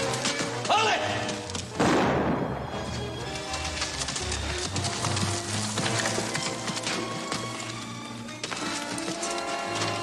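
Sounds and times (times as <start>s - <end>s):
orchestral western score: 0.0s - 10.0s.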